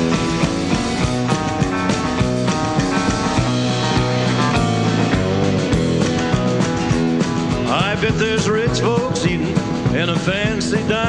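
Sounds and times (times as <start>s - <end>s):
country band playing: 0.0s - 11.0s
man singing: 7.6s - 11.0s.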